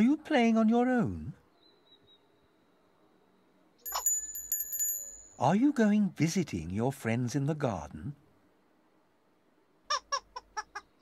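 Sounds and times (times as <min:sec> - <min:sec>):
high chirping notes: 0:03.9 - 0:05.4.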